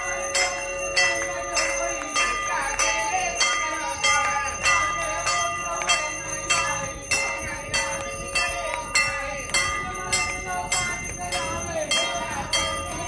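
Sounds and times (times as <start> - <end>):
brass temple bell ringing: 0.0 - 13.0.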